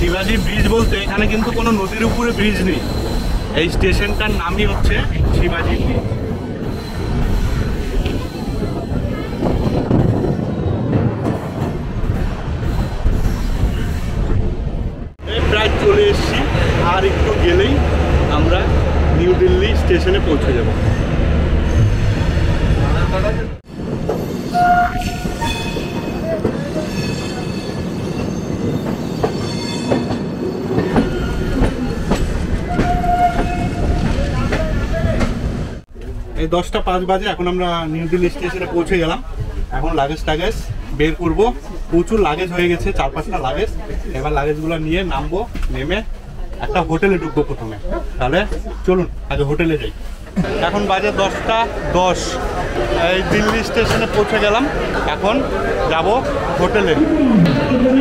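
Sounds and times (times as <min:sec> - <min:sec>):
high wheel squeal: 0:00.0 - 0:10.9, 0:24.2 - 0:32.0, 0:32.6 - 0:34.1
train wheels rolling on rails: 0:00.0 - 0:46.6, 0:47.5 - 0:58.0.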